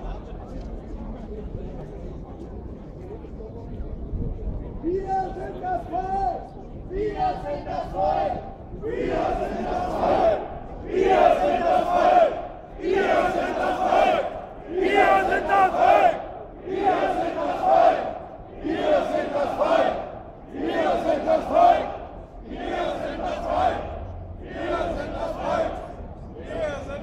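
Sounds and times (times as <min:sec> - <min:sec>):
crowd chanting in unison: 0:06.9 - 0:27.0.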